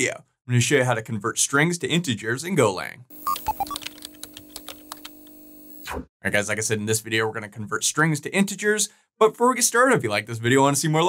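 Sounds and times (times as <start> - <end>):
keyboard typing clicks: 3.3 - 5.3.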